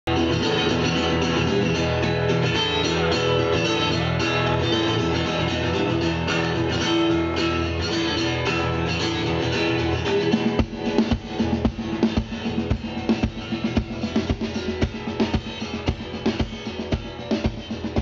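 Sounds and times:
bass guitar: 0.0s - 18.0s
acoustic guitar strumming: 0.1s - 18.0s
drum kit beat: 0.1s - 18.0s.

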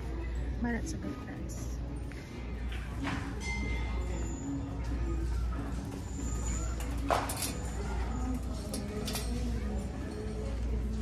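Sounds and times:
background music: 0.0s - 11.0s
low hum of shop ambience: 0.0s - 11.0s.

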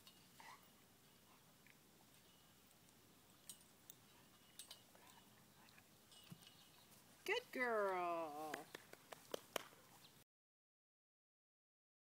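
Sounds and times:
faint clicks and rustles: 0.0s - 7.3s.

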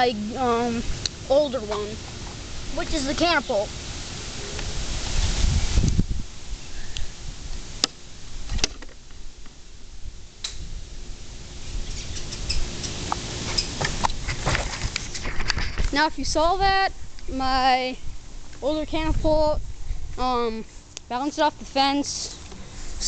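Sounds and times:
wind rumbling on microphone: 0.0s - 20.7s.

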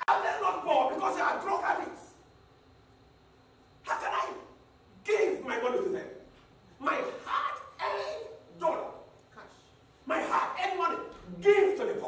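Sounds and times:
man shouting: 0.0s - 2.1s, 3.8s - 6.0s, 6.8s - 9.0s, 10.0s - 12.0s.

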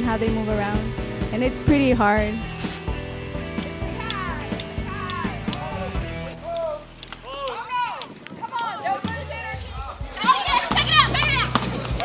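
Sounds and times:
background music with low bass: 0.0s - 7.2s, 9.1s - 12.0s
young people shouting: 3.8s - 11.6s.

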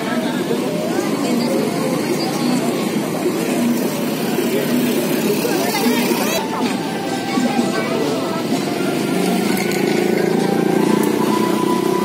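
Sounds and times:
crowd chatter: 0.0s - 12.0s
engines running: 0.0s - 12.0s.

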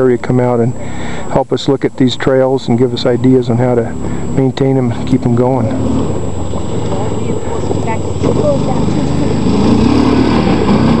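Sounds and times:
quad engine running: 0.0s - 11.0s.

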